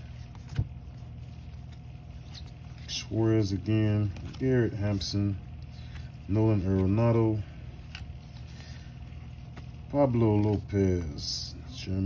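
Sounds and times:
trading cards handled: 0:00.0 - 0:11.2
steady low hum: 0:00.0 - 0:12.0.

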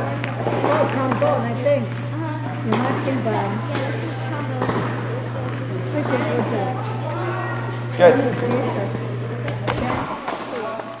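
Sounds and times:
faint voices: 0:00.0 - 0:11.0
steady low hum: 0:00.0 - 0:11.0.

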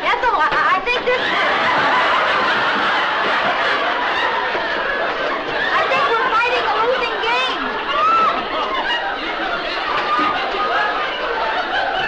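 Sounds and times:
studio audience laughing: 0:00.9 - 0:12.0.

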